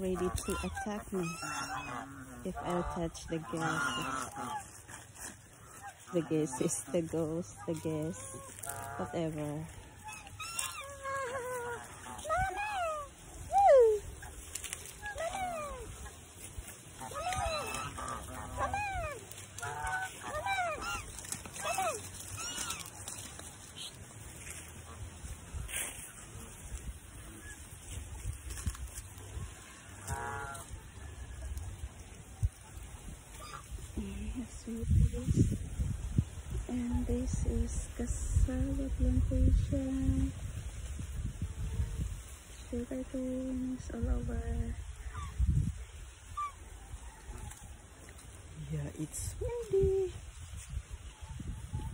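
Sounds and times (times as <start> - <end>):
geese honking: 0.0 - 35.0
wind buffeting microphone: 30.6 - 47.8, 48.6 - 51.9.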